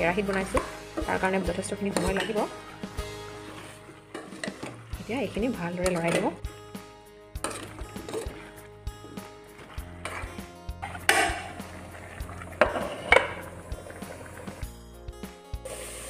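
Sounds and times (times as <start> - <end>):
background music: 0.0 - 16.0
spatula scraping a metal pan: 1.9 - 4.9, 7.4 - 14.4.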